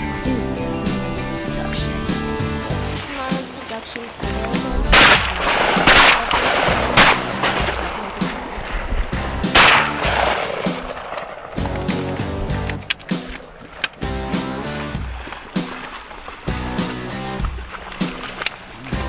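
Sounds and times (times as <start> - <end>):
background music with steady beat: 4.2 - 19.0
shotgun blasts with echo: 4.9 - 8.8, 9.4 - 11.7.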